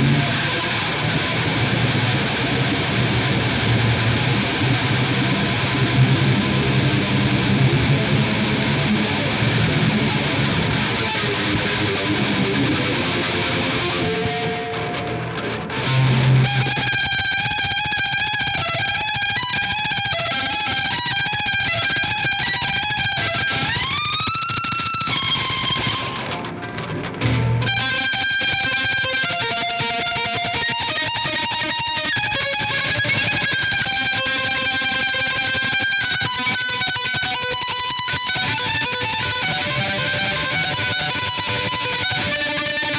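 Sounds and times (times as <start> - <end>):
distorted electric violin: 0.0 - 42.9
electric violin with looping: 27.2 - 42.9.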